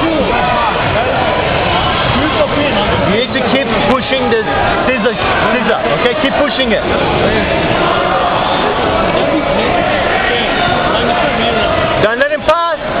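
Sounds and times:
overlapping voices echoing: 0.0 - 13.0.

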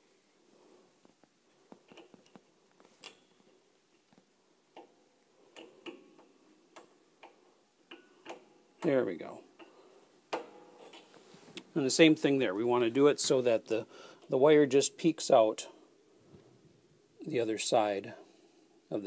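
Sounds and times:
piano wire tapping tuning pin: 5.6 - 11.1.

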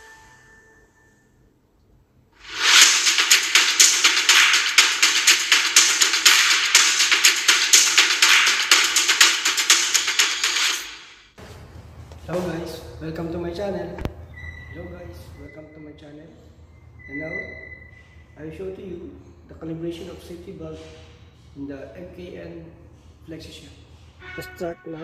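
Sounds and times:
chime: 0.0 - 1.4
man talking: 24.4 - 25.0.

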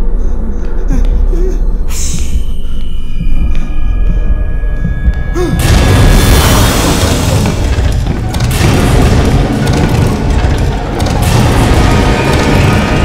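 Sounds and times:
horror film score: 0.0 - 13.0
deep booms and crashing: 5.5 - 13.0.

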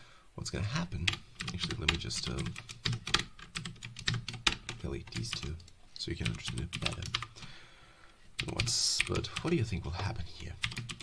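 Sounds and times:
computer keyboard typing: 1.1 - 7.4, 8.4 - 9.6, 10.6 - 11.0.

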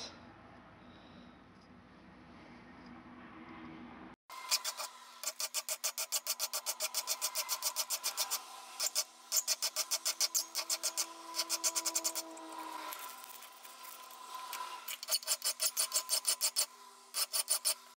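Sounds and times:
hand file filing steel: 4.4 - 18.0.

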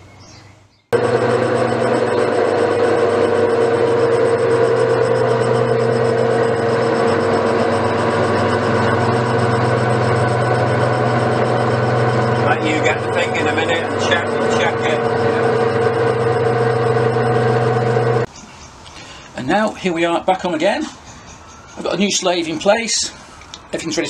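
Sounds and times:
metal lathe whining: 1.0 - 18.3.

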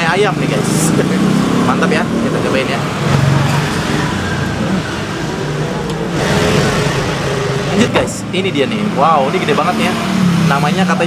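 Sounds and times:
roadside traffic noise: 0.0 - 11.0
car engine running: 1.6 - 9.9.

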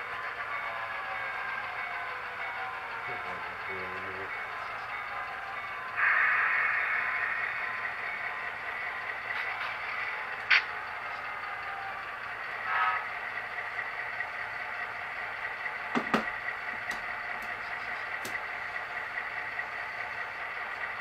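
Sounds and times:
model train wheels on rail: 0.0 - 21.0.

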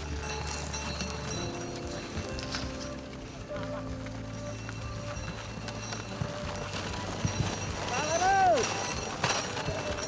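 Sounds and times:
hooves thudding on packed snow: 0.0 - 10.0.

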